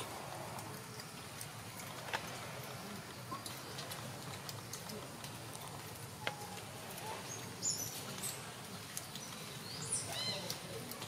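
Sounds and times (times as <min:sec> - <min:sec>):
faint sharp clicks: 0:00.0 - 0:11.0
outdoor background hiss: 0:00.0 - 0:11.0.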